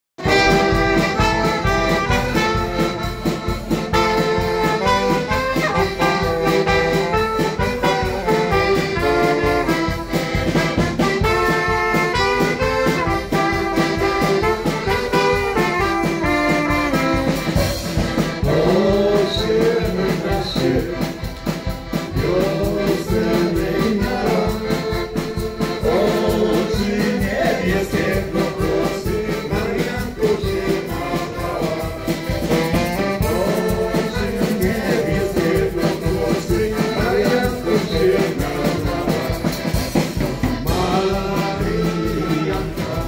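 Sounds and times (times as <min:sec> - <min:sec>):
accordions: 0:00.2 - 0:43.0
drum kit beat: 0:00.2 - 0:43.0
trumpet and saxophone melody: 0:00.2 - 0:43.0.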